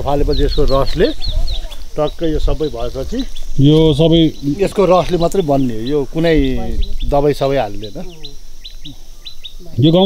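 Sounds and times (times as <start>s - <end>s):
small bird chirping: 0.0s - 10.0s.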